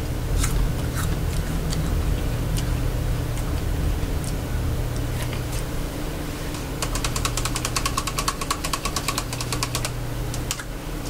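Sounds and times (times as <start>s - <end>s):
steady low hum: 0.0s - 11.0s
chewing crunchy apple: 0.2s - 5.7s.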